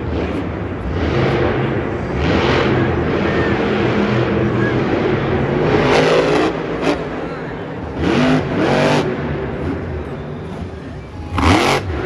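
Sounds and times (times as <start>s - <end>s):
truck engine revving: 0.0s - 12.0s.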